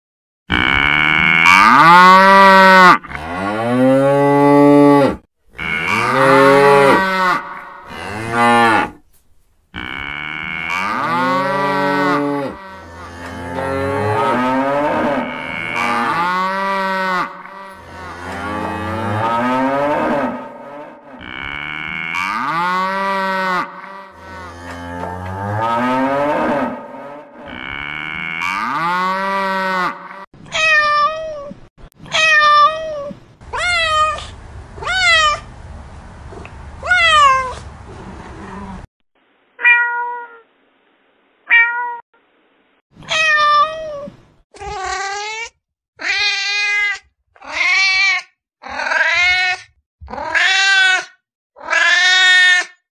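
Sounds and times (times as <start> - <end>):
cattle mooing: 0.5 - 9.0, 9.8 - 30.2.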